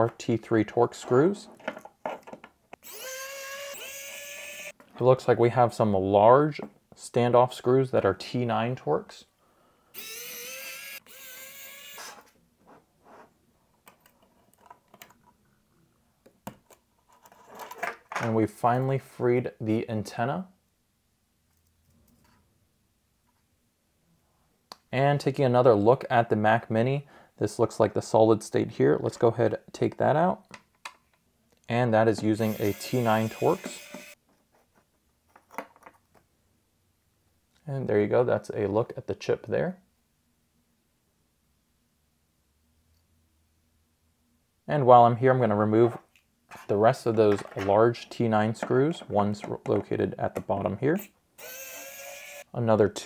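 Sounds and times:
electric screwdriver motor whining: 0:02.8 - 0:04.7, 0:10.0 - 0:12.2, 0:32.4 - 0:34.2, 0:51.4 - 0:52.5.

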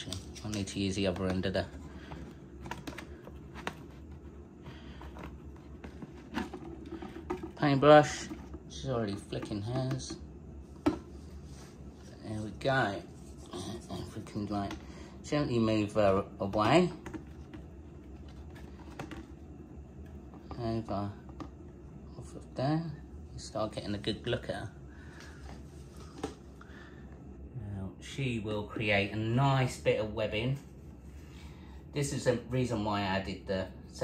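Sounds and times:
low steady hum: 0:00.0 - 0:34.0.

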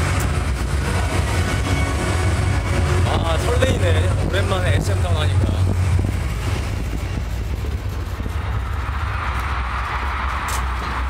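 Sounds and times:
muffled live concert rumble: 0:00.0 - 0:11.0.

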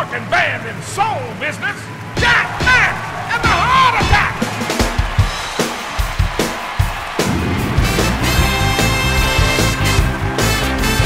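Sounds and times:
drum kit hits: 0:02.2 - 0:11.0
horn section holding chords: 0:02.2 - 0:11.0
soul band music: 0:02.2 - 0:11.0.

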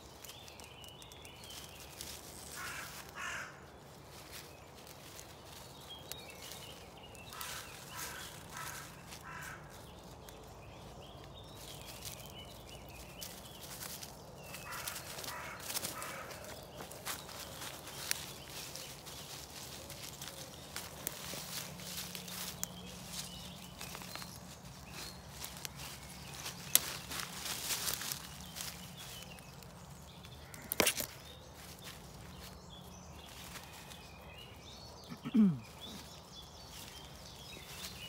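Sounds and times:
twigs snapping: 0:00.0 - 0:03.5, 0:11.2 - 0:32.5
footsteps through dry leaves: 0:00.0 - 0:38.0.

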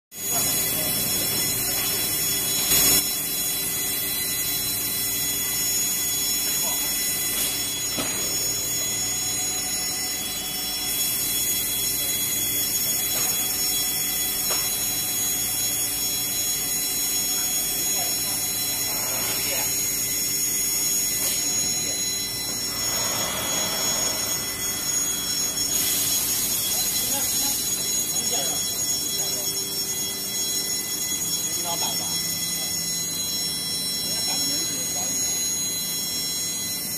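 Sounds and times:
industrial machine hiss and hum: 0:00.2 - 0:30.5.

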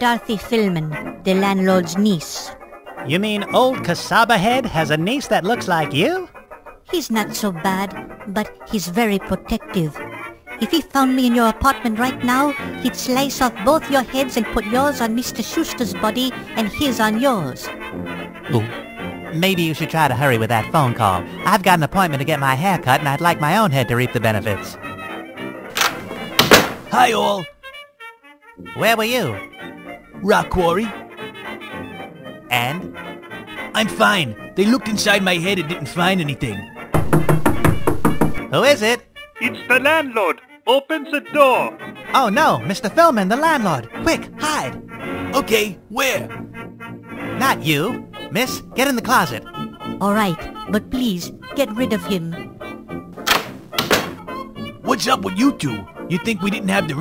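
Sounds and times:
background music: 0:00.0 - 0:57.0
door banging shut: 0:25.7 - 0:27.0, 0:37.0 - 0:38.5, 0:53.2 - 0:54.3.

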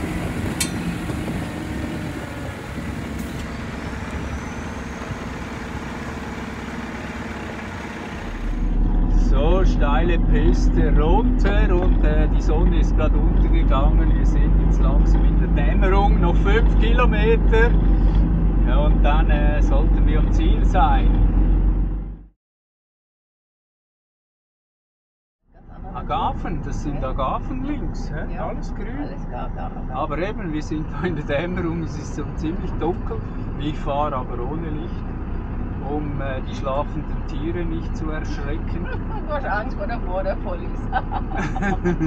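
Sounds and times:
diesel truck engine running: 0:00.0 - 0:22.3, 0:25.6 - 0:42.0.

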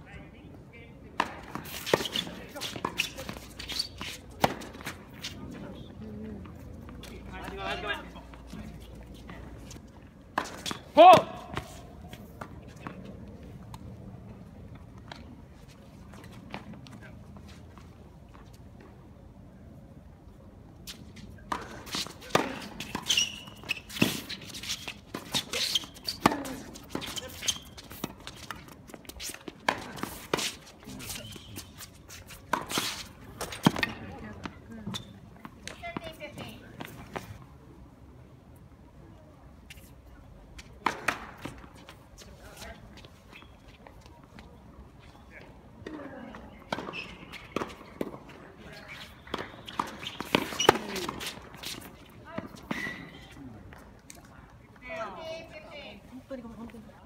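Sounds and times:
person shouting: 0:11.0 - 0:11.5
tennis balls bouncing on hard court: 0:21.4 - 0:37.3, 0:45.8 - 0:53.0
tennis balls struck by racket: 0:21.4 - 0:37.3, 0:40.8 - 0:41.7, 0:45.8 - 0:53.0.

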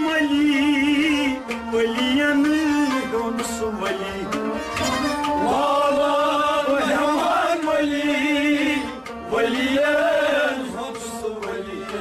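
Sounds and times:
men singing devotional chant: 0:00.0 - 0:12.0.

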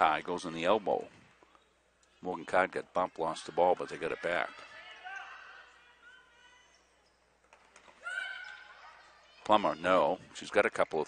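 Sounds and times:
shoe squeak: 0:04.8 - 0:09.3.

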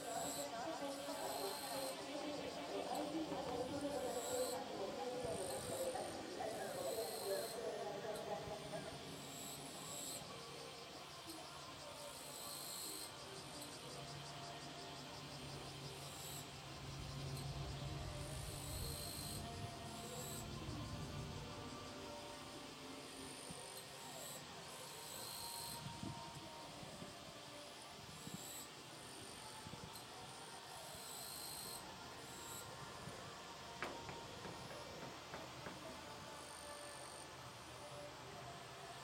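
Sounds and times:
insects calling in high bursts: 0:00.0 - 0:39.0.

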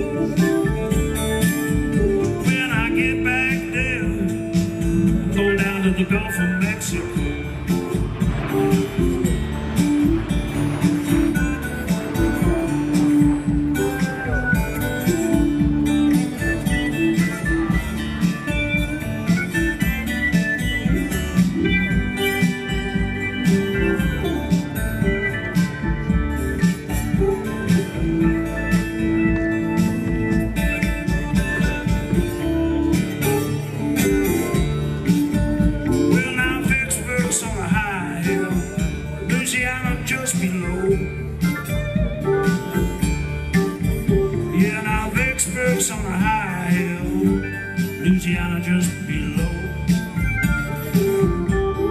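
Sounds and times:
steady low beat: 0:00.0 - 0:46.4
acoustic guitar playing: 0:00.0 - 0:51.9
rhythmic bass pulse: 0:00.0 - 0:51.9.

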